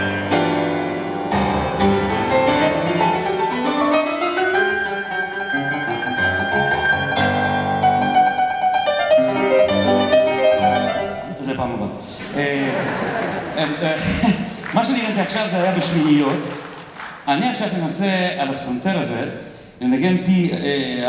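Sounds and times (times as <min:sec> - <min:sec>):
boogie-woogie grand piano: 0:00.0 - 0:11.6.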